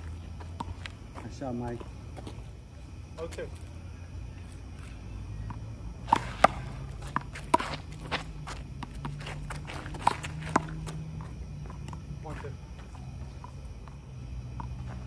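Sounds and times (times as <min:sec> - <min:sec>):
sneakers scuffing on concrete: 0:00.0 - 0:02.6, 0:06.1 - 0:13.2.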